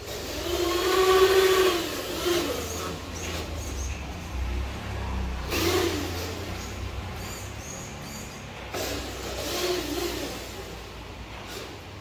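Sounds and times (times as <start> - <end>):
remote-control truck motor humming: 0.0 - 12.0.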